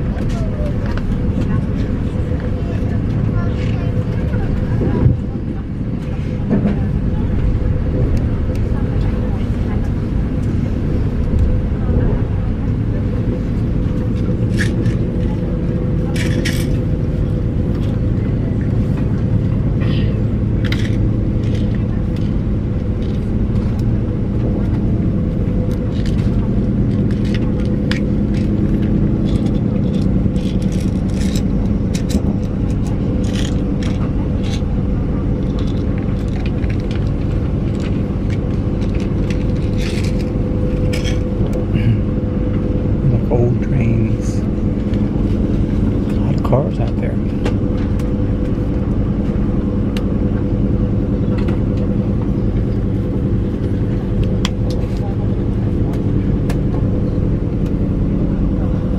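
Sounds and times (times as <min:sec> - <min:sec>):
faint constant hum: 0:00.0 - 0:58.9
train rumble inside carriage: 0:00.0 - 0:58.9.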